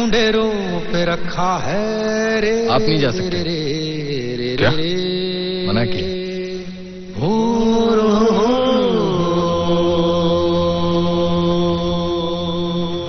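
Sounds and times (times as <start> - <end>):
low chanted vocal note: 0.0 - 13.0
musical drone: 6.6 - 13.0.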